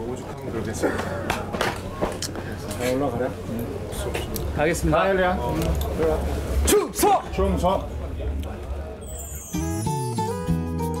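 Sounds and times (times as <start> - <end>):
men talking: 0.0 - 9.2.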